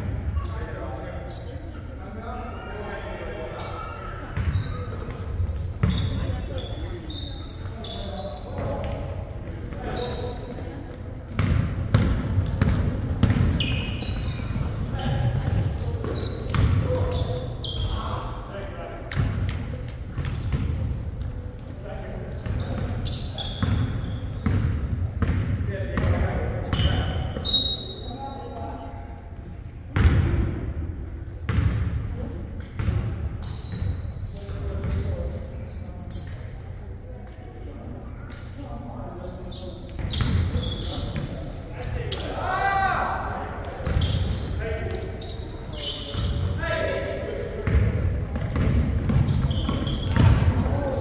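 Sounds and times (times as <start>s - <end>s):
sneaker squeaks: 0.0s - 28.9s, 31.2s - 32.0s, 32.6s - 51.0s
players' voices: 0.0s - 51.0s
basketball bouncing: 11.3s - 13.8s, 24.4s - 26.3s, 32.8s - 33.1s, 47.6s - 50.7s.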